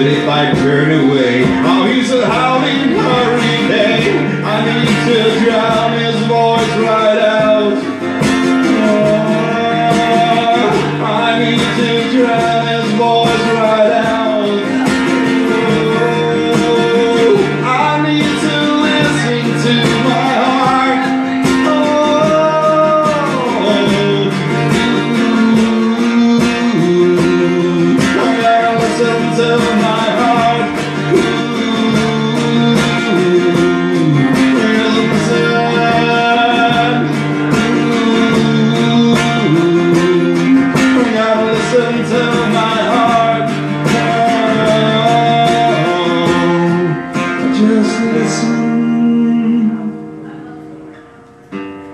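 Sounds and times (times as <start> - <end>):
acoustic guitar strumming: 0.0 - 51.9.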